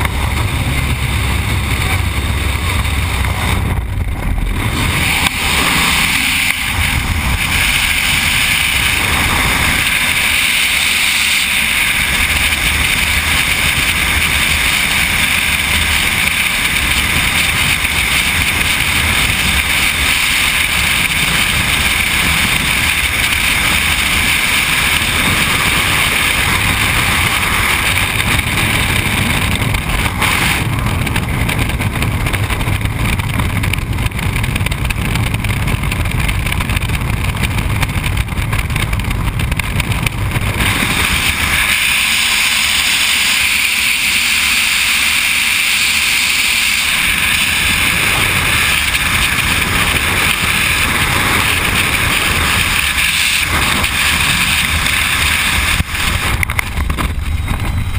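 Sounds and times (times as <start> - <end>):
freefall wind buffeting helmet: 0.0 - 57.9.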